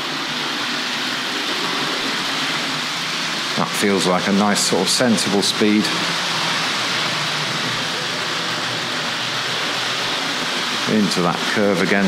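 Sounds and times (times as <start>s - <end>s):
model train running on track: 0.0s - 12.0s.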